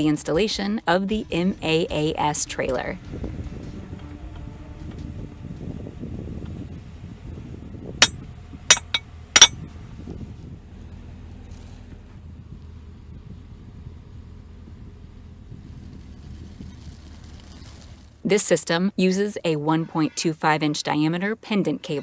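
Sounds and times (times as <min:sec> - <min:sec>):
low outdoor rumble: 0:00.0 - 0:19.7
metal tool clinking on metal: 0:08.0 - 0:09.6.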